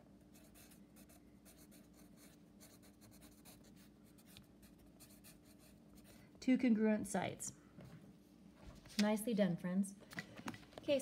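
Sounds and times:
pencil scratching on paper: 0:00.3 - 0:06.2.

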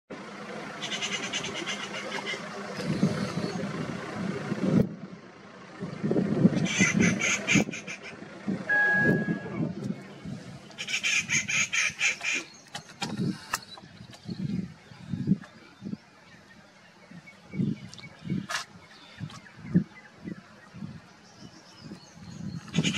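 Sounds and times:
birds chattering: 0:00.7 - 0:03.8, 0:06.5 - 0:08.3, 0:09.4 - 0:22.9.

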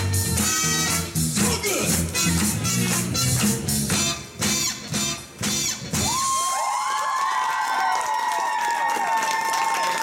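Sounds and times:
dance music with sharp beats: 0:00.0 - 0:06.4
audience cheering: 0:06.0 - 0:10.0.

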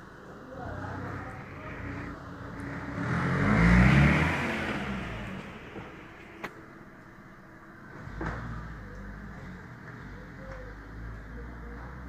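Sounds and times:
vehicle engine passing: 0:00.3 - 0:07.2.

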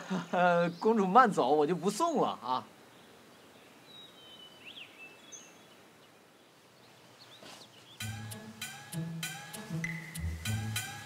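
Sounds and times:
bird chirps: 0:00.6 - 0:10.9
plucked string music: 0:08.0 - 0:11.0.

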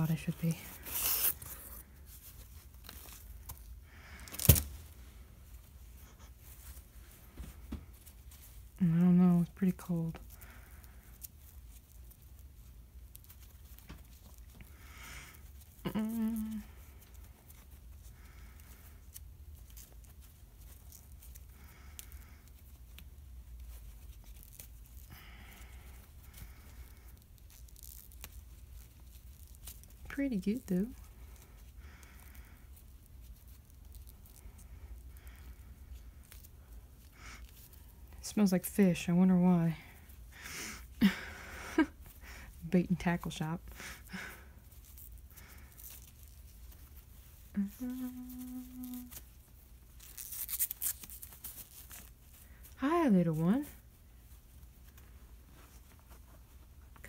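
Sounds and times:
fabric rustling: 0:00.0 - 0:14.6, 0:41.8 - 0:57.0
packaging and cloth bag rustling: 0:44.4 - 0:52.8.

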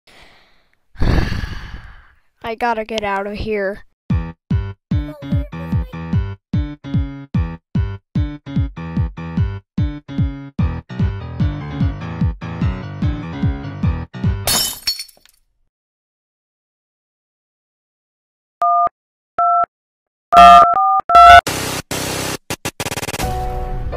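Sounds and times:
long loud sigh: 0:00.1 - 0:02.2
person breathing in: 0:00.1 - 0:02.3
music with thudding bass beat: 0:04.1 - 0:14.4
teacup smashing: 0:14.5 - 0:15.4.

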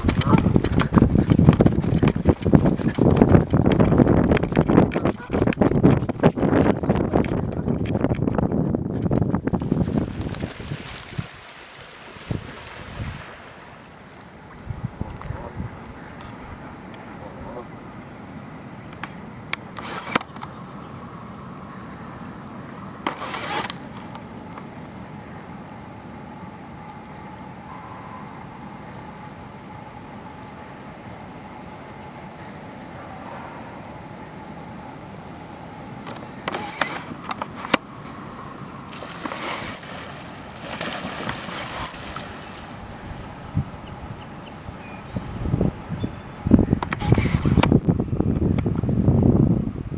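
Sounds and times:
steady low hum: 0:00.0 - 0:49.9
short bursts of noise: 0:19.0 - 0:20.6, 0:23.0 - 0:24.2, 0:36.0 - 0:37.9, 0:46.8 - 0:47.9.

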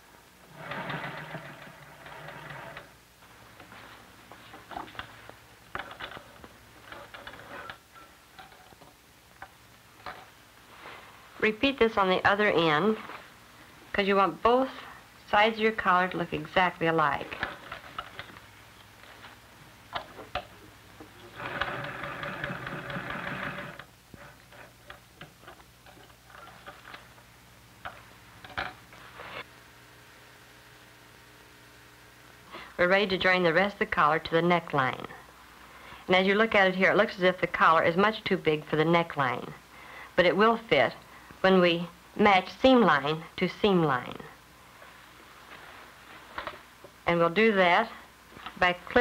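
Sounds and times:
electric sewing machine stitching: 0:00.5 - 0:03.0, 0:21.2 - 0:24.7.

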